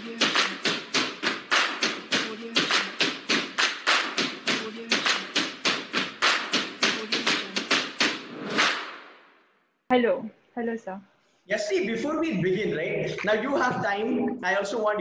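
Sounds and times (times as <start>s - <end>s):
driving percussion beat: 0.0s - 9.1s.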